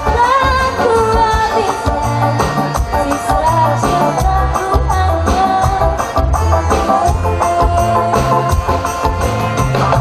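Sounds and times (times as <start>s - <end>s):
woman singing: 0.0s - 9.0s
live band drum beat: 0.0s - 10.0s.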